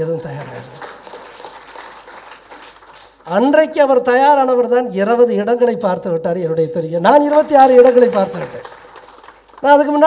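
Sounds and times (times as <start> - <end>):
audience applauding softly: 0.0 - 3.5, 7.2 - 10.0.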